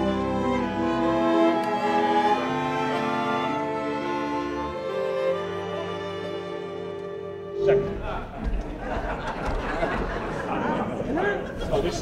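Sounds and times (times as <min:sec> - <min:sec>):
orchestra playing slow chords: 0:00.0 - 0:08.8
bowed strings: 0:00.0 - 0:10.7.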